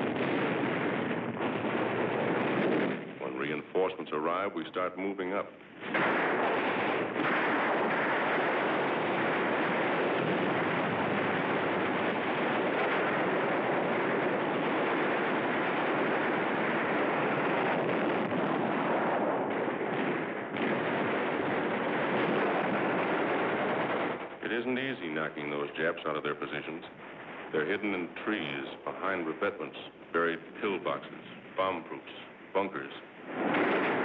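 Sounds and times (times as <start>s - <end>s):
continuous battle gunfire: 0.0s - 4.2s, 5.3s - 31.8s, 32.6s - 34.0s.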